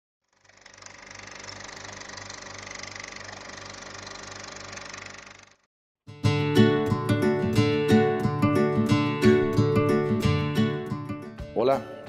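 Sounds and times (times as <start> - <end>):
small motor running with low pulse: 0.2 - 5.7.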